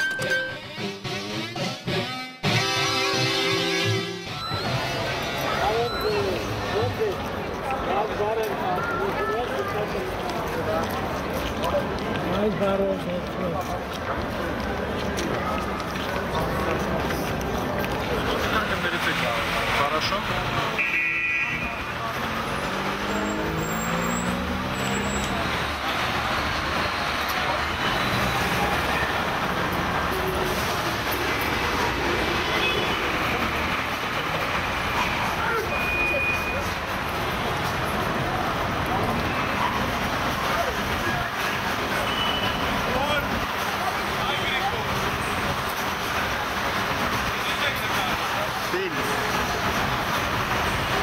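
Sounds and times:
people talking: 0:04.6 - 0:30.6, 0:42.6 - 0:51.0
passing cars: 0:04.7 - 0:51.0.

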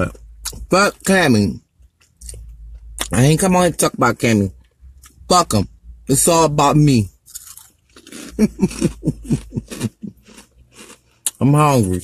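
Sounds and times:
woman chewing potato chips: 0:07.3 - 0:11.4
woman laughing with mouth full: 0:08.4 - 0:10.2.

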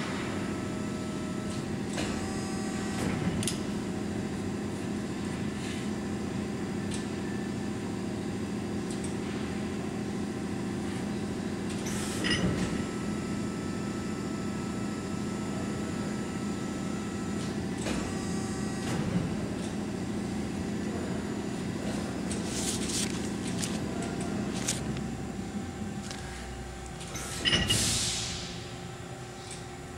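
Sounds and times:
hydraulic pump humming: 0:11.2 - 0:29.9.

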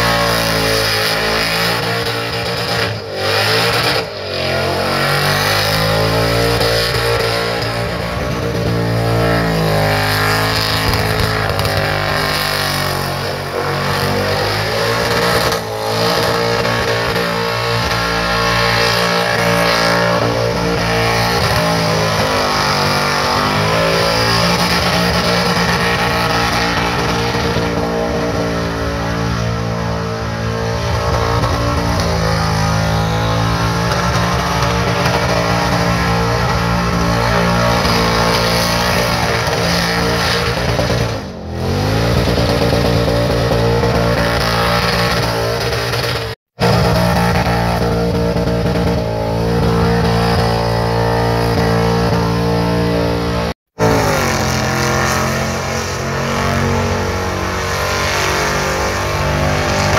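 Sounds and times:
car engine revving high: 0:00.0 - 0:59.9
tyres screeching in burnout: 0:00.0 - 0:59.9.

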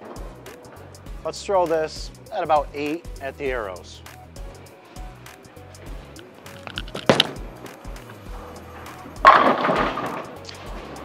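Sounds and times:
background music with beat: 0:00.0 - 0:11.0
ball clattering into pins: 0:06.6 - 0:07.4, 0:09.3 - 0:10.3
bowling ball thudding on lane: 0:06.9 - 0:07.4.

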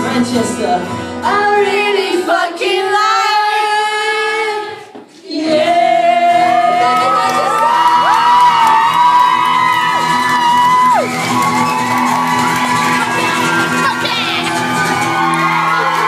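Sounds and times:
crowd sing-along song: 0:00.0 - 0:08.2
crowd shouting and whooping: 0:06.0 - 0:16.0.

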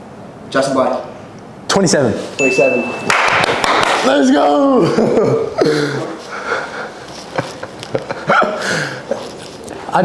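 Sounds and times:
men laughing: 0:04.5 - 0:09.9.

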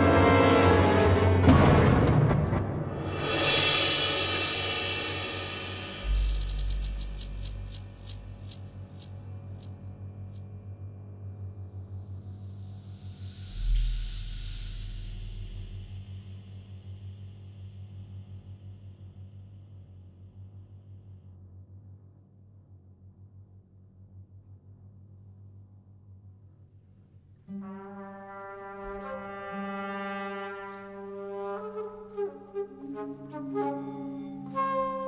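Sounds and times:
high hiss: 0:06.0 - 0:09.7, 0:11.9 - 0:16.3
crackling clicks: 0:06.0 - 0:10.4
low hum: 0:06.0 - 0:16.7.

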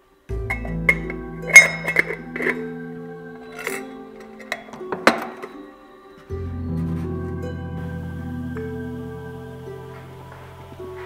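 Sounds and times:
background guitar music: 0:00.0 - 0:11.0
metal lid clinking on container: 0:00.5 - 0:02.8, 0:03.5 - 0:05.6.

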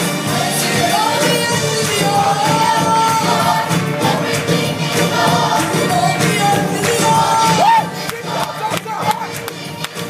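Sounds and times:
gospel choir singing: 0:00.0 - 0:10.0
instrumental backing with beat: 0:00.0 - 0:10.0.

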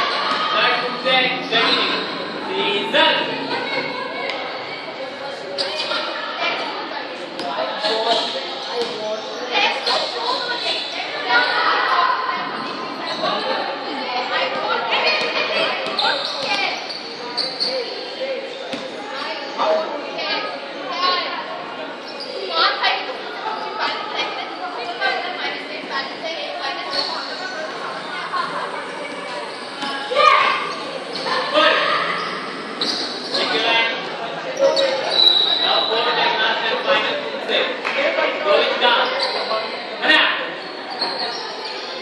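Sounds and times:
voices talking in a hall: 0:00.0 - 0:42.0.

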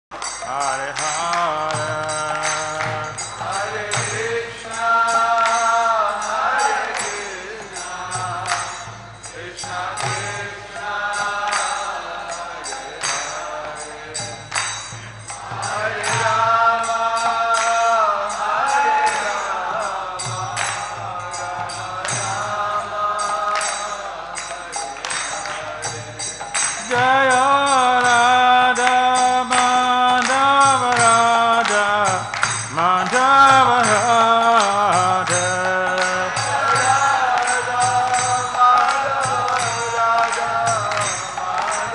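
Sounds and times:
devotional chanting: 0:00.1 - 0:41.9
hand cymbals struck: 0:00.1 - 0:41.9.

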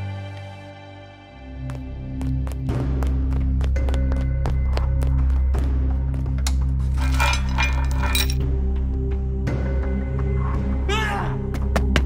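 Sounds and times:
background music with low drone: 0:00.0 - 0:12.0
metallic clinking and jingling: 0:06.8 - 0:08.5.

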